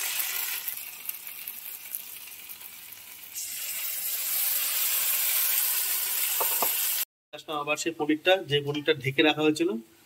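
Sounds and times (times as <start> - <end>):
vegetables sizzling in hot oil: 0.0 - 7.1.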